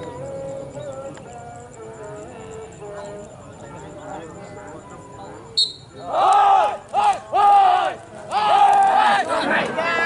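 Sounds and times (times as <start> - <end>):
men shouting high-pitched calls: 6.0 - 10.0.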